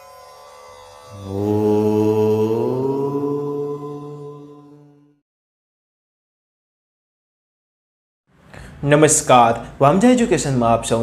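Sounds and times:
deep chanted vocal note: 1.0 - 5.2.

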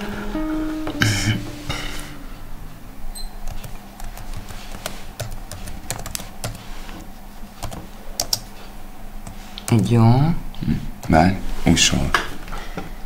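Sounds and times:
keyboard typing: 3.5 - 6.6, 7.6 - 8.5.

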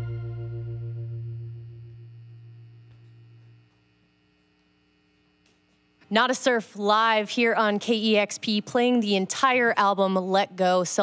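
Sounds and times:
low sustained band note: 0.0 - 3.6
electric hum from amplifiers: 0.0 - 11.0.

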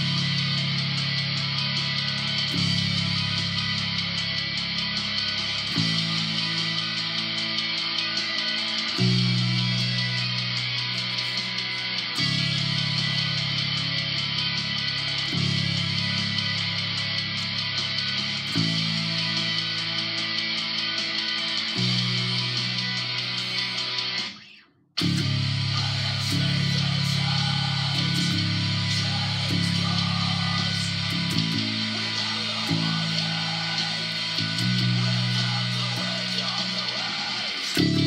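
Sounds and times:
electric bass held notes: 0.0 - 24.4, 25.0 - 38.0
distorted metal recording: 0.0 - 38.0.

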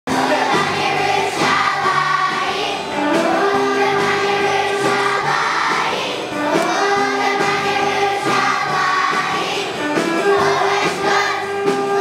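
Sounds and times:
children's choir singing: 0.1 - 12.0
instrumental accompaniment: 0.1 - 12.0.

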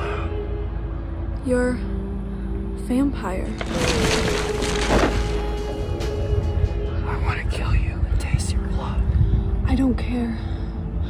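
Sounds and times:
steady low rumble: 1.9 - 11.0.

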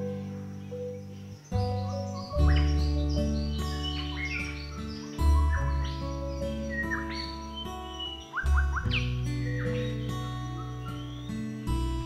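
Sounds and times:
bird-like chirping glides: 0.0 - 12.0.

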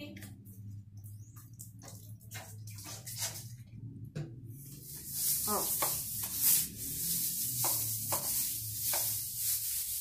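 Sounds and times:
brush scrubbing wet tiled floor: 1.9 - 3.6, 4.6 - 10.0.

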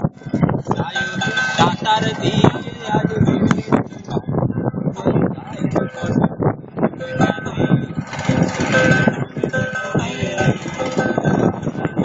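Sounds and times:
person singing held melody: 7.0 - 12.0.

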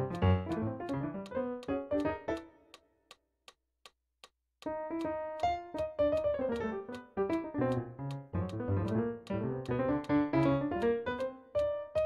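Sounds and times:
digital piano chords: 0.0 - 2.8, 4.6 - 12.0
metronome clicking: 0.0 - 4.0, 4.6 - 12.0.

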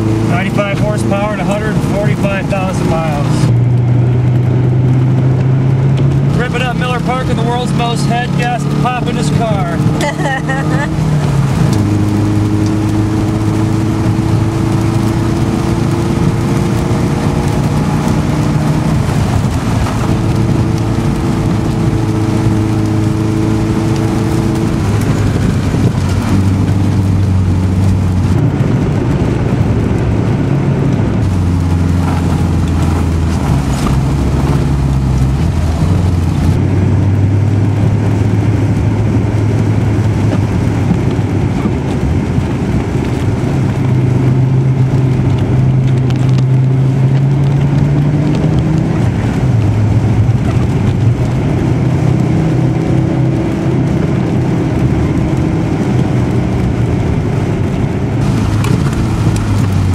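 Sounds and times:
car engine running: 0.0 - 59.9.

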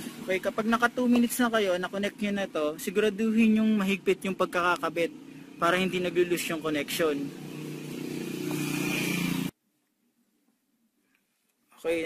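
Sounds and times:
motor vehicle engine running: 0.0 - 9.5
outdoor noise: 0.0 - 12.0.

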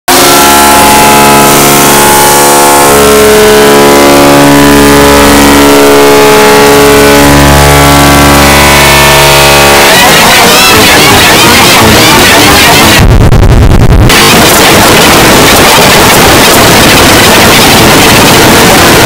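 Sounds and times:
distorted drone: 0.0 - 19.0.

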